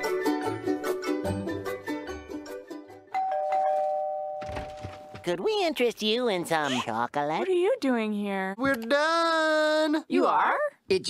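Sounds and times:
two-tone doorbell chime: 3.1 - 5.1.

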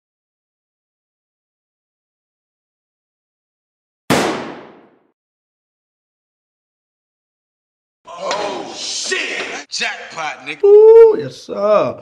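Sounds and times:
loud impact bang: 4.1 - 5.0.

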